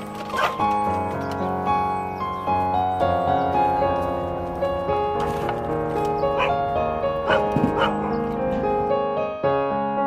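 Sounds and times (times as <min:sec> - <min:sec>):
piano background music: 0:00.0 - 0:10.0
dog barking: 0:00.4 - 0:00.6, 0:06.4 - 0:06.6, 0:07.2 - 0:08.2.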